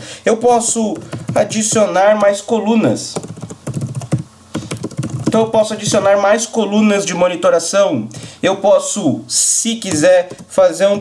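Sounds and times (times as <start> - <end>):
keyboard key clicks: 3.2 - 6.2.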